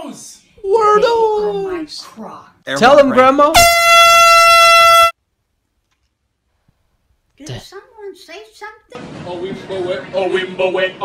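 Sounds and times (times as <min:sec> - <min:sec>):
air horn blasting: 0:03.5 - 0:05.2.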